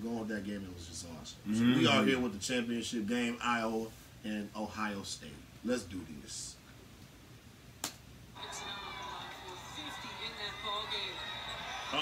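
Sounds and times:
arena crowd noise: 0:08.4 - 0:12.0.

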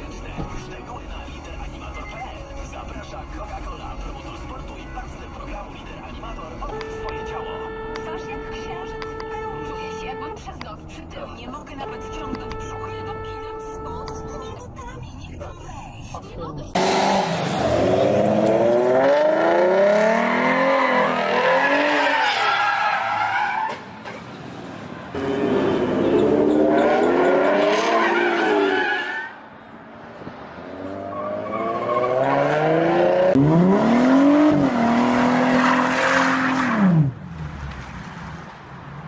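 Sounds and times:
car engine revving hard: 0:16.8 - 0:22.1, 0:25.2 - 0:28.8, 0:30.8 - 0:37.7
tyres skidding: 0:16.8 - 0:39.0.

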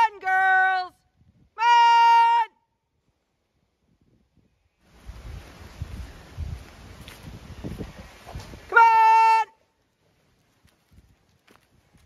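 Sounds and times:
rushing rustling noise: 0:04.8 - 0:08.7.

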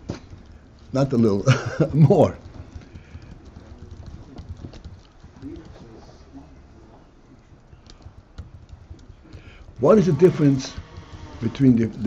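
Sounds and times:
faint irregular clicks: 0:00.0 - 0:12.0
low room hum: 0:00.0 - 0:12.0.

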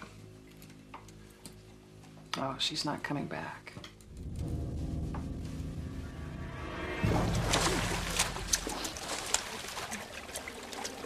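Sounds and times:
low sustained background music: 0:00.0 - 0:11.0.

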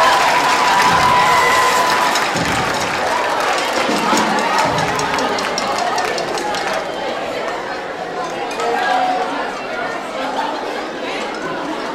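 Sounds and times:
audience applause: 0:00.0 - 0:07.8
crowd voices: 0:00.0 - 0:11.9.

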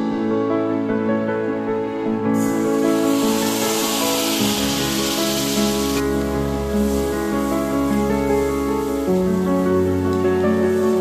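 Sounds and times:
background instrumental music: 0:00.0 - 0:11.0
liquid sizzling in hot oil: 0:02.4 - 0:11.0.

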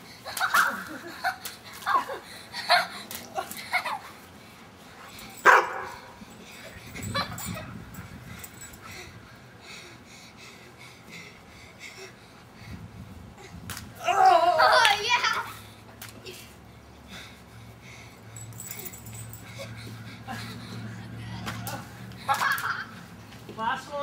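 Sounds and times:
person shouting: 0:14.0 - 0:14.7.

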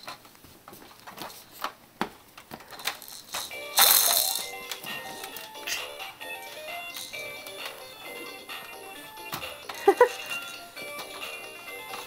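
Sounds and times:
toy crashing sound effect: 0:03.3 - 0:05.1.

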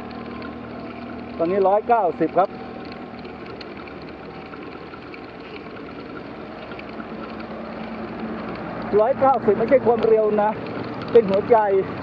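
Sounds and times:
bicycle riding on paved road: 0:00.0 - 0:12.0.

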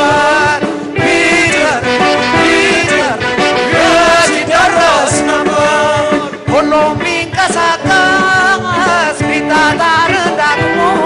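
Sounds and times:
man singing: 0:00.0 - 0:11.0
rock band playing: 0:00.0 - 0:11.0.

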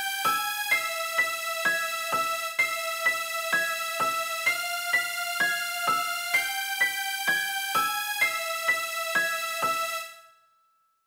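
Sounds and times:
keyboard playing repeating notes: 0:00.0 - 0:10.2.

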